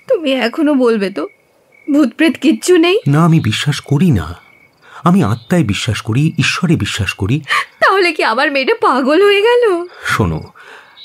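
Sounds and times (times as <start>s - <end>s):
crickets chirping: 0.0s - 11.0s
person speaking: 1.9s - 10.8s.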